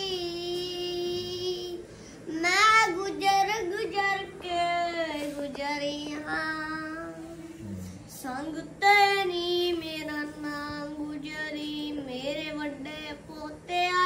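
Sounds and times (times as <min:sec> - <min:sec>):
boy singing devotional song: 0:00.0 - 0:14.0.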